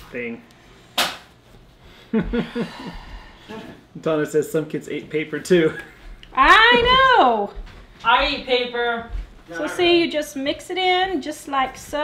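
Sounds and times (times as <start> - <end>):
person laughing: 2.1 - 3.7.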